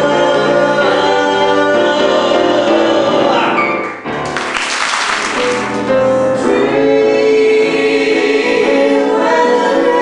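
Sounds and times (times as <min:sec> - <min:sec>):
voices singing in harmony: 0:00.0 - 0:03.8, 0:05.9 - 0:10.0.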